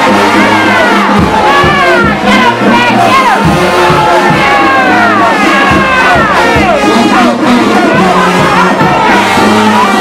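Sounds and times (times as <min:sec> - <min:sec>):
bass drum beat: 0:00.0 - 0:10.0
brass band playing: 0:00.0 - 0:10.0
crowd cheering and shouting: 0:00.0 - 0:10.0.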